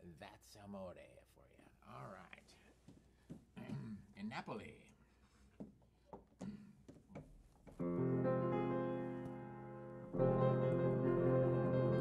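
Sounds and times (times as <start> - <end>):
piano chord ringing: 7.8 - 12.0.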